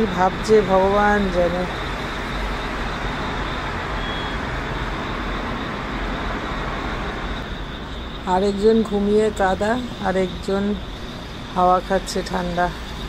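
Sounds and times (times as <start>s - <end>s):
road traffic hum: 0.0s - 13.0s.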